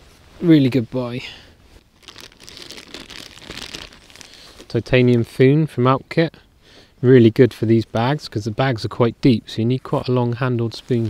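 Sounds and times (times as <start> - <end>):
plastic bag crinkling: 1.8 - 4.8.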